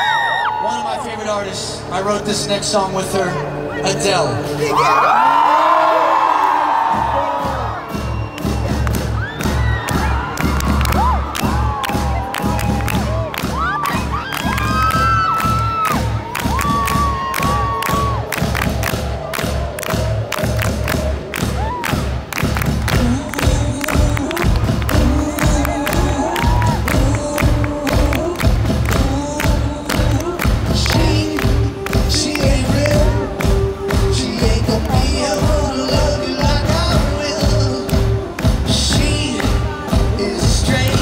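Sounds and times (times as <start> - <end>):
crowd cheering and screaming: 0.0 - 1.5, 3.3 - 28.4
heavy low drum beat: 6.8 - 41.0
person singing: 22.8 - 41.0.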